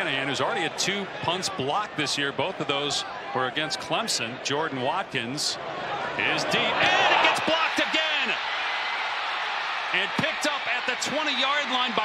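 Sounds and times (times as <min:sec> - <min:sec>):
stadium crowd noise: 0:00.0 - 0:12.0
excited voices: 0:05.8 - 0:12.0.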